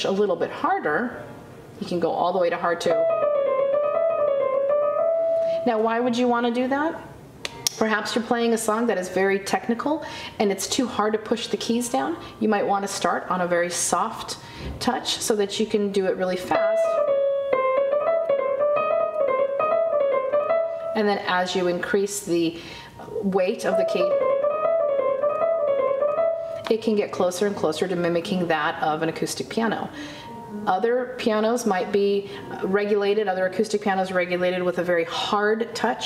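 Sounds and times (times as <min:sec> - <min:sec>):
digital piano playing: 0:02.5 - 0:06.5, 0:16.1 - 0:21.8, 0:23.4 - 0:27.3, 0:29.8 - 0:33.5.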